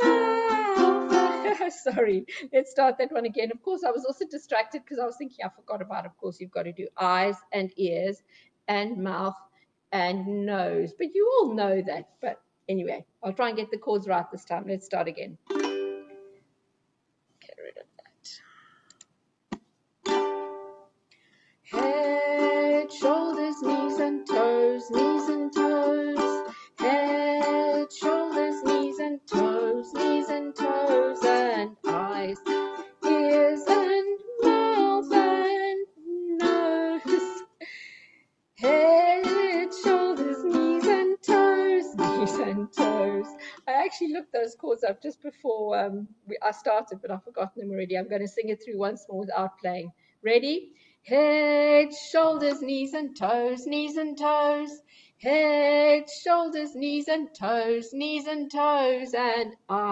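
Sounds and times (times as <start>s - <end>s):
ukulele strummed in chords: 0.0s - 1.6s, 15.5s - 16.2s, 20.0s - 20.8s, 21.7s - 35.6s, 36.3s - 37.5s, 38.6s - 43.4s.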